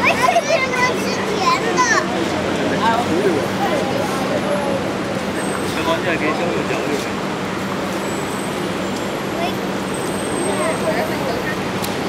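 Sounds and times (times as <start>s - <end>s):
urban traffic rumble: 0.0s - 12.0s.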